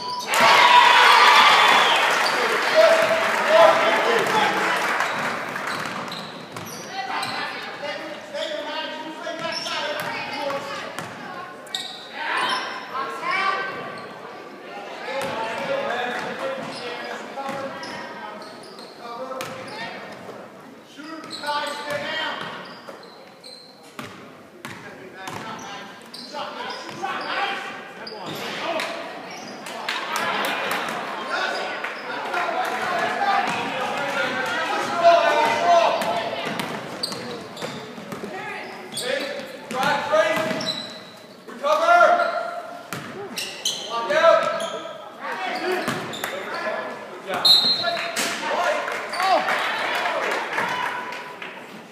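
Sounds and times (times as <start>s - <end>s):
indistinct shouting and chatter: 0.0s - 5.8s, 26.4s - 44.3s, 44.9s - 51.9s.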